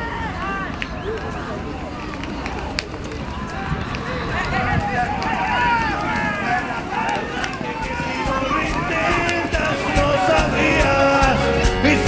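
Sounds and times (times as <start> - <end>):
voices calling and shouting: 0.0 - 12.0
horses galloping on dirt: 0.5 - 10.3.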